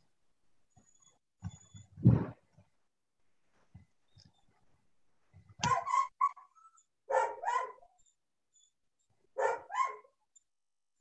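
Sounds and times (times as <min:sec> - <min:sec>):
dog barking: 0:07.1 - 0:07.9, 0:09.4 - 0:10.2.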